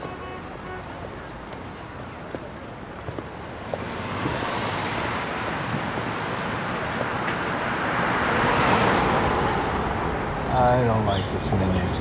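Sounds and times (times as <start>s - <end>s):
cars driving by: 0.0s - 12.0s.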